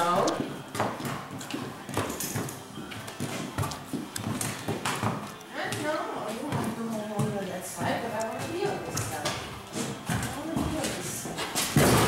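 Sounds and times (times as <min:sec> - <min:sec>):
horse hooves clopping on concrete: 0:00.3 - 0:12.0.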